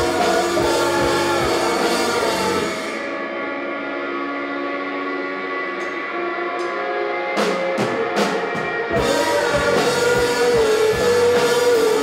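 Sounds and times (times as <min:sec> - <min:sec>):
sustained guitar and bass drone: 0:00.0 - 0:12.0.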